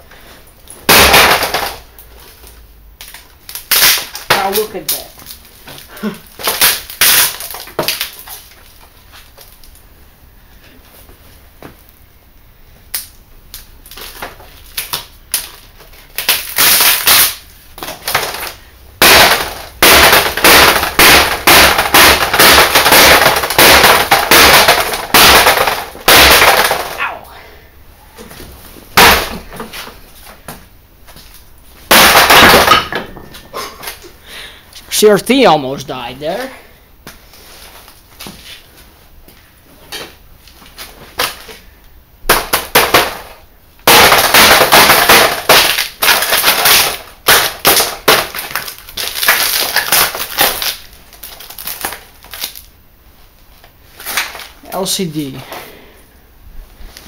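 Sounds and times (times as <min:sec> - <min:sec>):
glass cracking and crunching: 0:02.4 - 0:05.5, 0:06.3 - 0:08.8, 0:12.9 - 0:27.0, 0:43.9 - 0:52.7.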